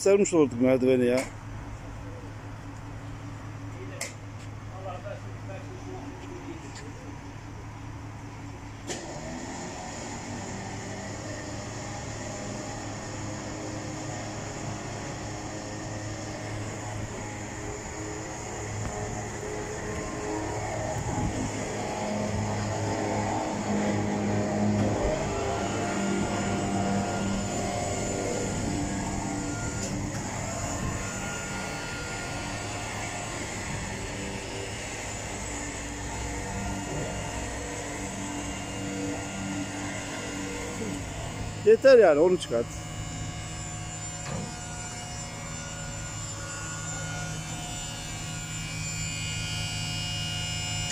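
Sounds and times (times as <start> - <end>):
motor humming: 8.8 - 50.9.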